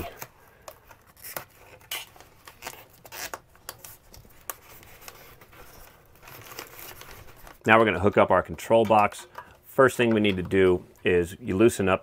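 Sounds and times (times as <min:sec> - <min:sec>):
foam strip rustling and crinkling: 0:00.0 - 0:08.8.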